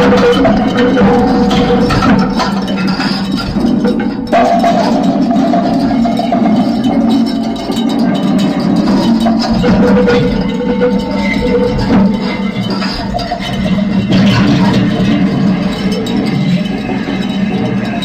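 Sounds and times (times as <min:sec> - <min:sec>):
held tone: 0:00.0 - 0:18.0
metallic clicks and clanks: 0:00.0 - 0:18.0
steady low drone: 0:00.0 - 0:18.0.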